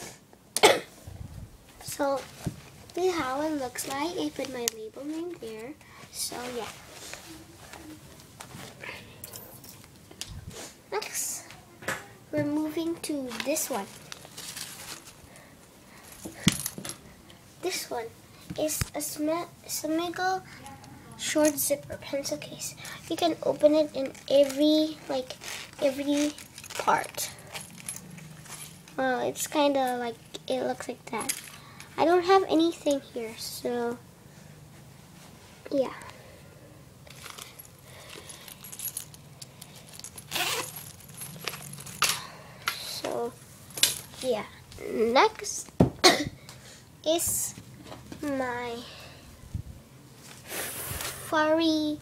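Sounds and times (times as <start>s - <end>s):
zipper pulls jingling: 25.3s - 28.8s, 37.1s - 42.2s
zipper rasp: 40.2s - 41.9s.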